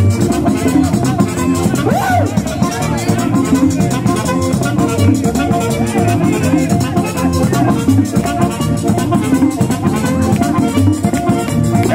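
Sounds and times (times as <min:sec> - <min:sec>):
accordion melody: 0:00.0 - 0:11.9
saxophone: 0:00.0 - 0:11.9
tambora drum: 0:00.0 - 0:11.9.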